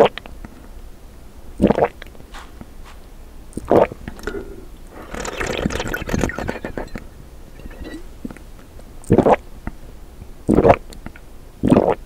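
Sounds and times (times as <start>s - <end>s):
loud gulps of swallowing: 3.6s - 8.4s.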